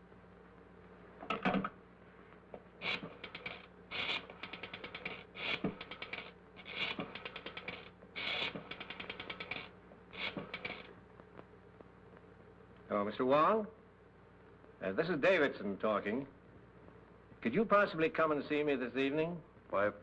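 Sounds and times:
rotary telephone dial clicking: 2.8 - 10.9.

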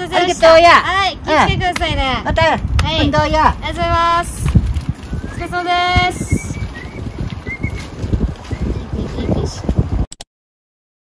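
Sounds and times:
stroller wheels rattling: 2.9 - 10.0
footsteps: 4.2 - 9.9.

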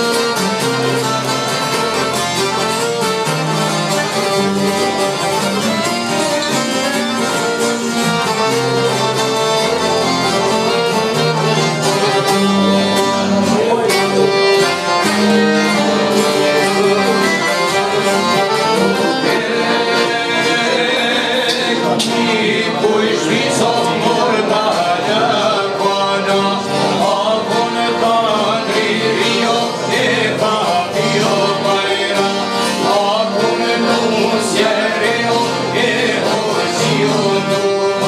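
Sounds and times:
accordion: 0.0 - 38.0
guitar: 0.0 - 38.0
plucked lute: 0.0 - 38.0.

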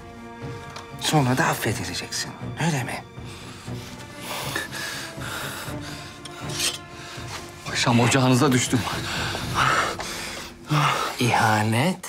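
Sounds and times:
soft background music: 0.0 - 12.0
clothing rustling: 6.3 - 10.6.

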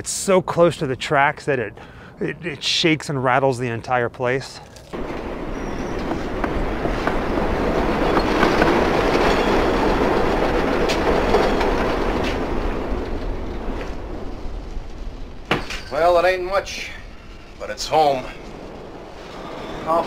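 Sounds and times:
train wheels clattering on track: 5.0 - 14.2.

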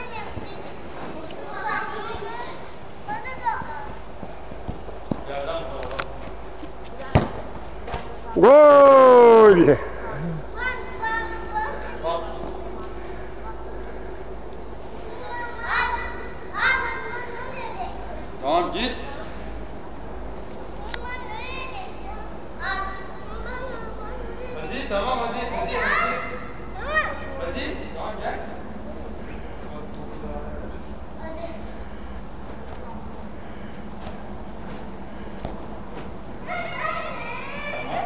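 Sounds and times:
steady background hum: 0.0 - 38.0
child's high-pitched shout: 36.5 - 38.0.

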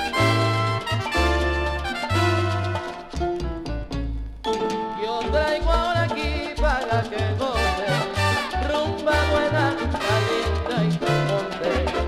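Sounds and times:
syncopated bass line: 0.0 - 4.6, 5.2 - 12.0
salsa orchestra on vinyl: 0.0 - 12.0.

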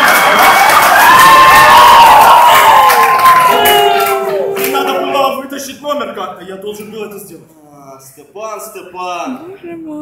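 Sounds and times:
audience cheering and shouting: 0.0 - 5.4
high whoops: 0.1 - 5.4.

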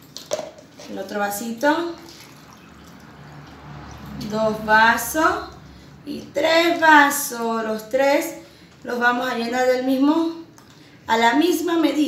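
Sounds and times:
water pouring into plastic cup: 1.9 - 4.2.

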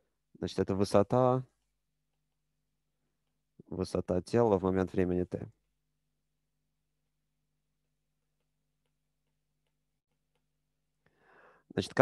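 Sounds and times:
stylus tapping on tablet screen: 7.7 - 10.8.

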